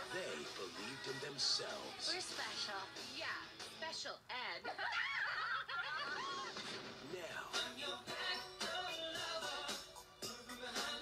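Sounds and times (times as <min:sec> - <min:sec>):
person laughing: 0:04.6 - 0:06.6.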